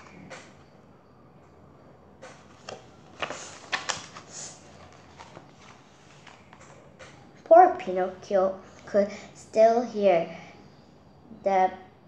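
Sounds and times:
book handling clicks: 2.2 - 4.3
paper rustling: 2.3 - 6.8.

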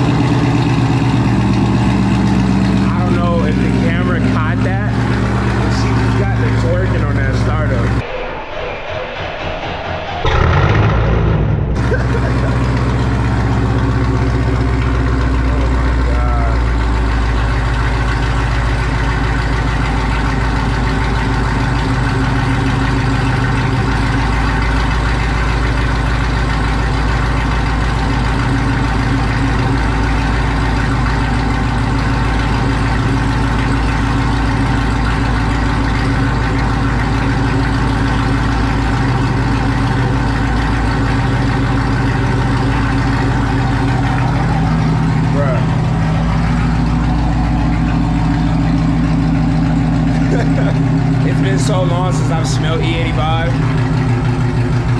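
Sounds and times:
car engine idling: 0.0 - 54.9.

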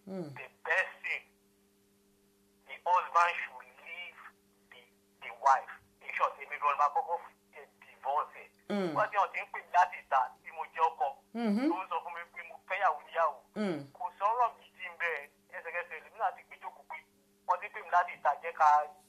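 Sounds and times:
steady low hum: 0.0 - 19.0
voice over telephone line: 0.4 - 1.3, 2.7 - 19.0.

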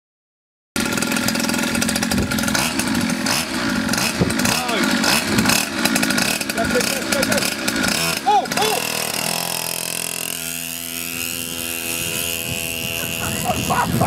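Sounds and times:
moped engine buzzing: 0.8 - 14.0.

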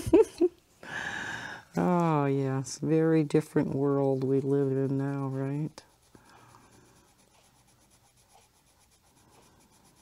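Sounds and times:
colored pencil scratching on paper: 2.9 - 10.0.

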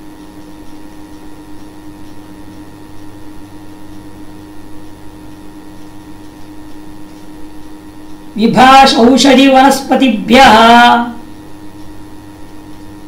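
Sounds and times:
steady hum and hiss: 0.0 - 13.0.

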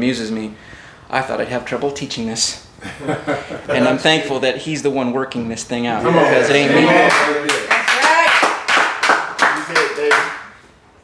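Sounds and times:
voices responding: 5.9 - 8.5
people clapping: 6.8 - 10.6.

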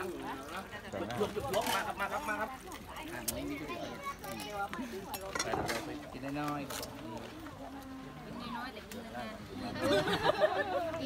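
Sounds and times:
chatter of voices: 0.0 - 11.0.

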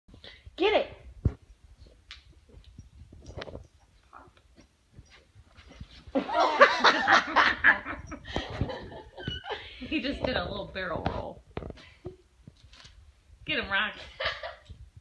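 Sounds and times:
person laughing: 6.2 - 9.8.

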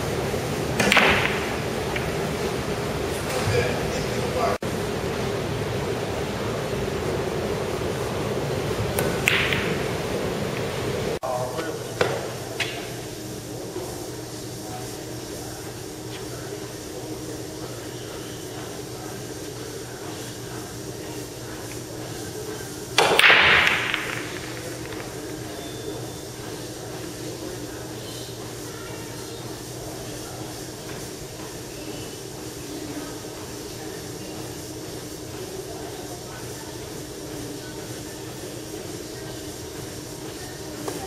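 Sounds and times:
room hiss and hum: 0.0 - 41.0
pool balls clicking: 0.6 - 3.8, 8.7 - 11.2, 22.9 - 26.6
cue tip clicking on ball: 23.0 - 25.3.

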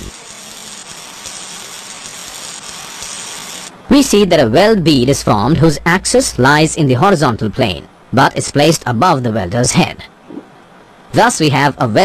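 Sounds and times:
welding torch hissing: 0.0 - 4.1.

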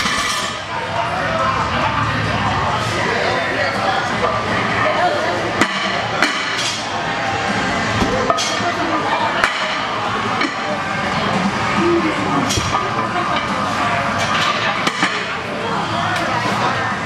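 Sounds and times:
voices: 0.4 - 17.0.

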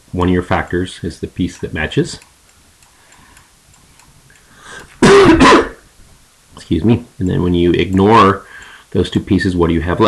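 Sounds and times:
faint light ticks: 1.5 - 5.0, 7.8 - 8.8
person coughing: 5.0 - 5.8.

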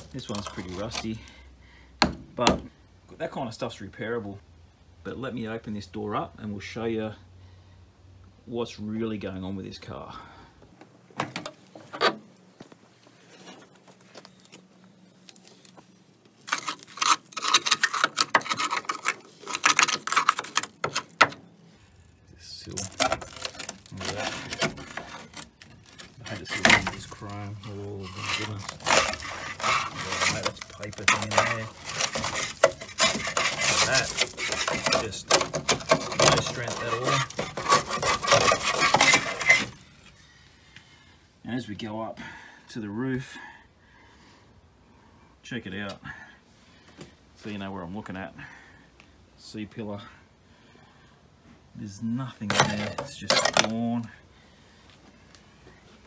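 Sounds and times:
rusted metal scraping and rubbing: 0.0 - 1.4, 15.3 - 40.2, 52.4 - 54.1.

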